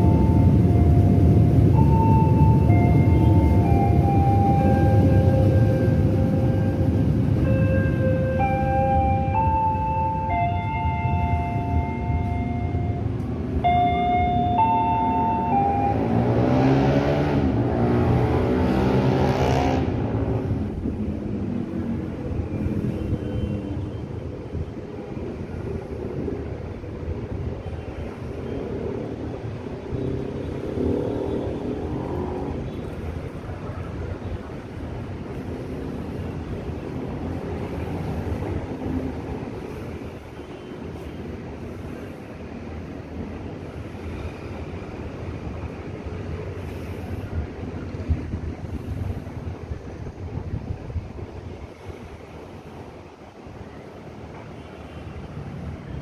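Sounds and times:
city traffic rumble: 0.0s - 56.0s
motor vehicle passing: 14.8s - 20.5s.

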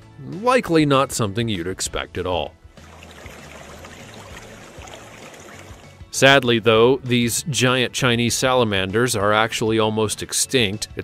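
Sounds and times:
stream water flowing: 2.8s - 6.0s.

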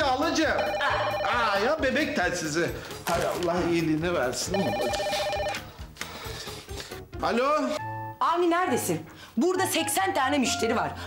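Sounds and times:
telephone ringing electronic trill: 0.5s - 1.6s, 4.5s - 5.6s.

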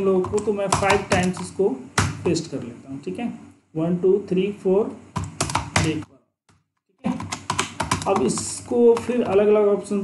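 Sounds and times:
computer keyboard typing: 0.0s - 2.2s, 5.2s - 9.7s
person speaking: 0.0s - 10.0s.

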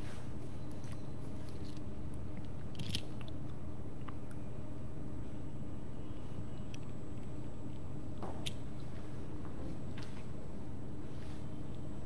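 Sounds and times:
low room hum: 0.0s - 12.0s
small clicks and crackles: 0.8s - 4.4s.

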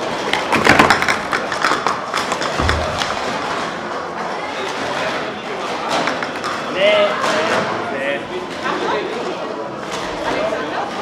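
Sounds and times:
plastic cups clattering: 0.0s - 4.1s.

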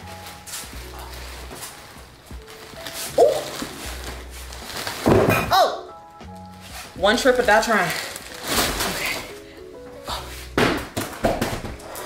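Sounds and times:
plastic rustling: 0.0s - 5.6s, 6.3s - 12.0s
packages thudding on surface: 0.1s - 5.6s, 6.8s - 9.4s, 10.4s - 12.0s.

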